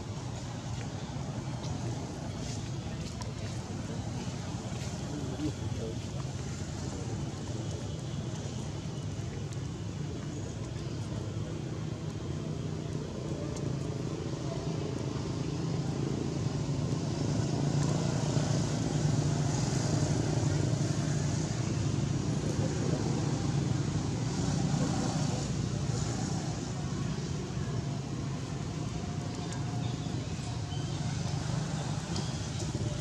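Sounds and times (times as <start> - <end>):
vehicle engine hum: 0.0 - 33.0.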